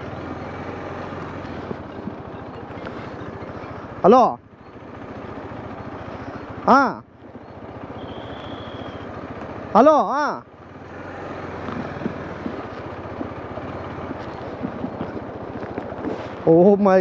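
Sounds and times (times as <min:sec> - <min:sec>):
motorcycle engine riding: 0:00.0 - 0:17.0
rider calling out: 0:01.8 - 0:10.6
rushing wind: 0:11.5 - 0:17.0.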